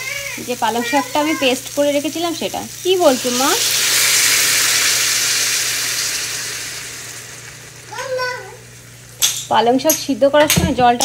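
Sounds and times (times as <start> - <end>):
hot oil sizzling in frying pan: 0.0 - 9.5.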